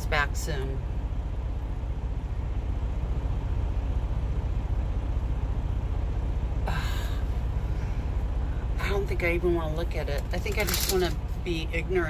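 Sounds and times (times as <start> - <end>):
truck engine idling: 0.0 - 12.0.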